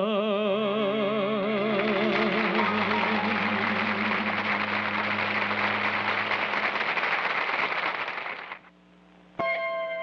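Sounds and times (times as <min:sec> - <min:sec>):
studio audience applauding: 0:01.7 - 0:08.7
orchestra holding low chord: 0:02.2 - 0:06.9.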